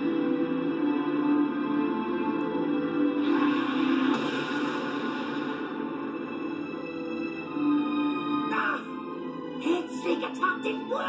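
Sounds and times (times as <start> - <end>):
tense soundtrack music: 0.0 - 11.0
noisy sound effect: 3.2 - 7.3.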